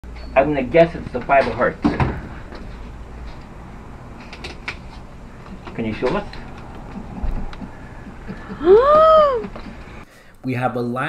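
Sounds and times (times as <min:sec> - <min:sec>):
low steady background rumble: 0:00.4 - 0:11.0.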